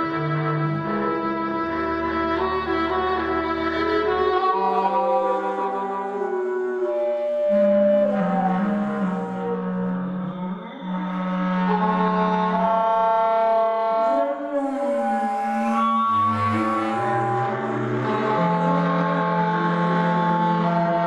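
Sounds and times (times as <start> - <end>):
woodwinds and strings playing: 0.0 - 21.0.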